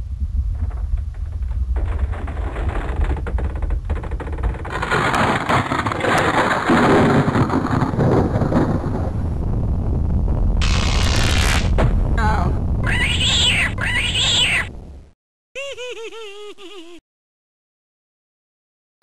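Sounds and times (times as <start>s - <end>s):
deep rumbling with crashing: 0.0s - 15.1s
harsh high-pitched noise: 10.6s - 11.8s, 12.8s - 14.7s.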